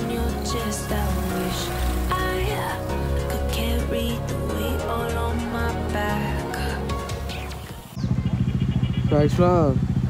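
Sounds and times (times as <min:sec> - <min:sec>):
motorcycle engine idling: 0:00.0 - 0:05.5, 0:06.1 - 0:10.0
background music: 0:00.0 - 0:08.0.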